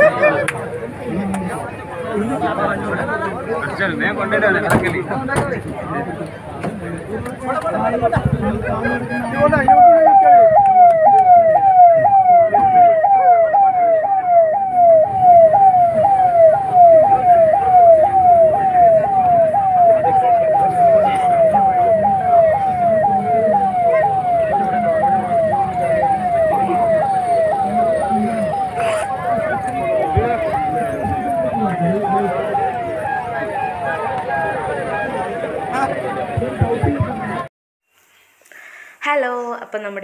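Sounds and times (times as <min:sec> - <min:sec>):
electronic siren falling sweeps: 0:09.3 - 0:37.5.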